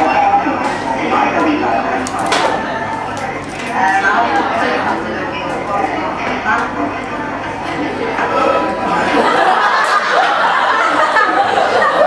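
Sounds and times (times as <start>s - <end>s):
indistinct film voices: 0.0s - 12.0s.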